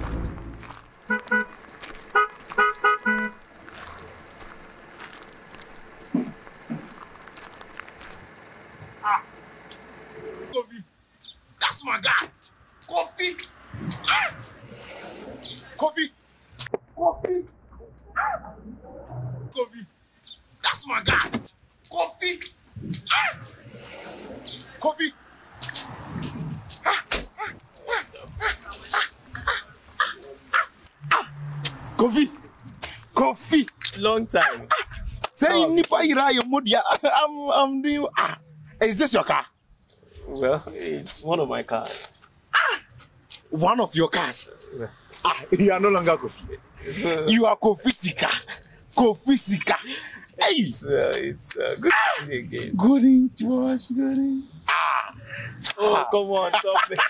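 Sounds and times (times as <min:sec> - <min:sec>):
car horn toots: 0:01.1 - 0:03.4
dog barking: 0:09.0 - 0:09.3, 0:14.1 - 0:14.4, 0:18.2 - 0:18.5, 0:23.1 - 0:23.5, 0:28.9 - 0:31.3, 0:34.4 - 0:34.9.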